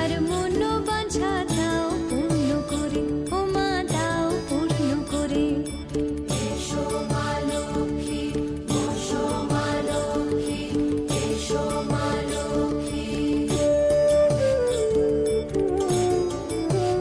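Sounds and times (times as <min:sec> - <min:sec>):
devotional song: 0:00.0 - 0:17.0.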